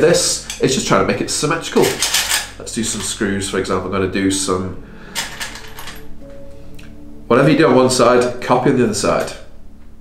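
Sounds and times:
faint background music: 0.0 - 10.0
metal screws clinking: 1.8 - 3.1, 5.2 - 6.1.

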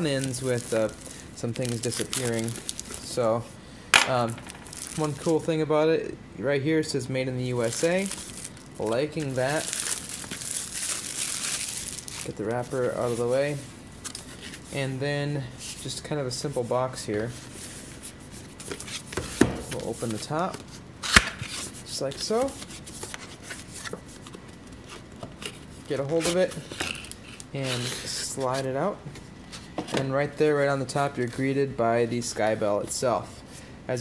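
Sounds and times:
plastic wrap crinkling: 0.0 - 3.4, 4.1 - 5.5, 7.5 - 14.8, 19.8 - 28.8.

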